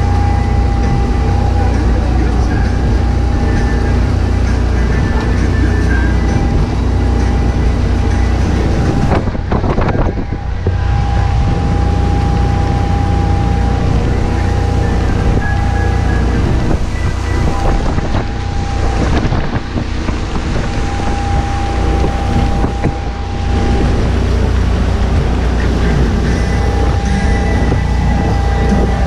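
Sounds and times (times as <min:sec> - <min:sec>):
boat engine drone: 0:00.0 - 0:29.0
water rushing past hull: 0:00.0 - 0:29.0
wind buffeting microphone: 0:00.0 - 0:29.0.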